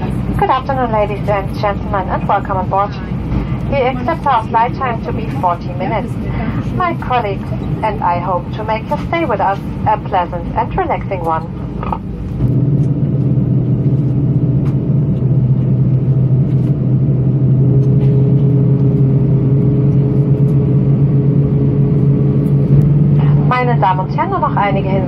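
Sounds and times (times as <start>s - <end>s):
airplane cabin engine hum: 0.0s - 25.0s
high engine tone: 0.0s - 25.0s.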